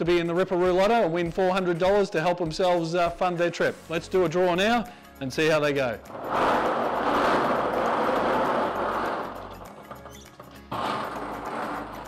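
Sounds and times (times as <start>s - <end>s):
plastic balls rattling in drum: 6.0s - 12.0s.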